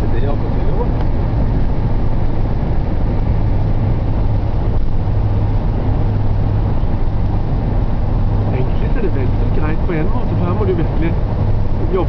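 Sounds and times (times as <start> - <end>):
motorhome engine droning: 0.0 - 12.0.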